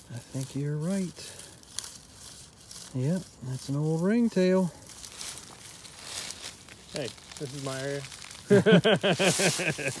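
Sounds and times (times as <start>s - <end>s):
person laughing loudly: 8.4s - 10.0s.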